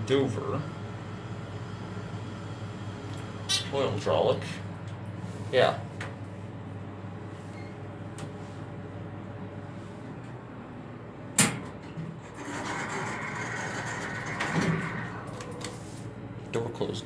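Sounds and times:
steady low hum: 0.0 - 17.0
elevator doors sliding: 11.4 - 16.2.

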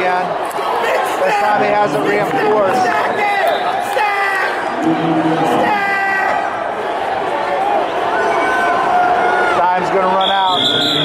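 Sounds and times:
spectators shouting: 0.0 - 11.0
high whistle blast: 10.2 - 11.0.

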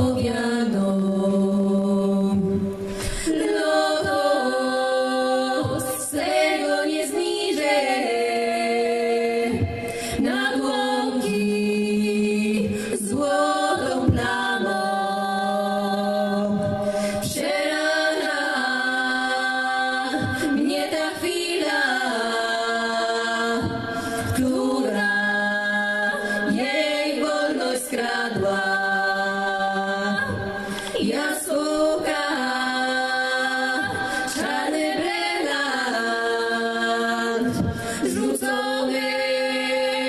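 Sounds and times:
women singing in harmony: 0.0 - 40.0.

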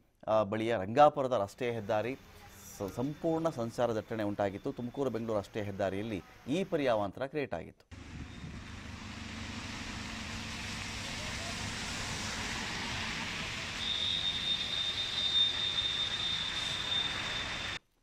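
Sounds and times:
low engine hum: 7.9 - 15.0
traffic hiss on wet road: 8.0 - 17.8.

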